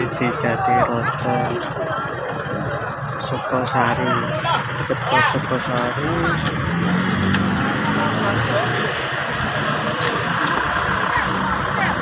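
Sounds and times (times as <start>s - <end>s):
crowd chatter: 0.0s - 12.0s
motor vehicle engines running: 0.0s - 12.0s
road traffic: 0.0s - 12.0s.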